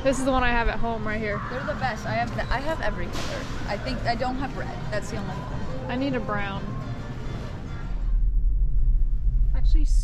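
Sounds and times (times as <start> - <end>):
background music: 0.0 - 8.6.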